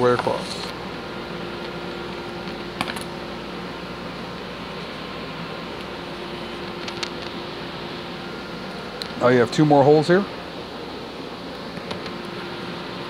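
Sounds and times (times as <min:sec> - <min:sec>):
fan hum: 0:00.0 - 0:13.0.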